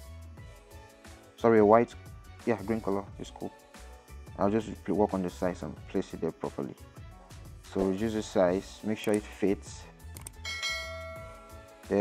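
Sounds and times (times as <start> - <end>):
background music: 0.0 - 12.0
quick clicks: 10.1 - 10.4
notification bell chime: 10.4 - 11.7.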